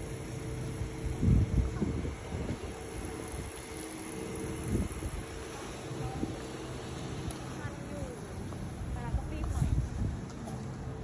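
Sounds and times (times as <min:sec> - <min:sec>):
street hum and hiss: 0:00.0 - 0:11.0
wind buffeting microphone: 0:00.1 - 0:11.0.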